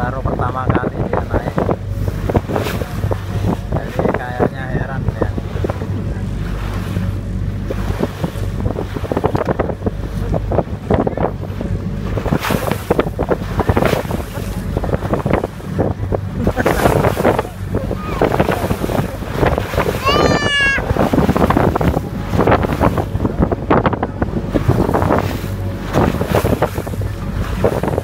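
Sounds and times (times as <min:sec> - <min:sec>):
boat engine droning: 0:00.0 - 0:28.0
water splashing against hull: 0:00.0 - 0:28.0
wind buffeting microphone: 0:00.0 - 0:28.0.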